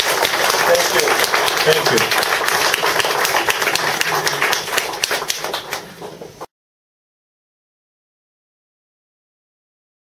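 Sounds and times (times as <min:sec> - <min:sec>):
audience clapping: 0:00.0 - 0:06.5.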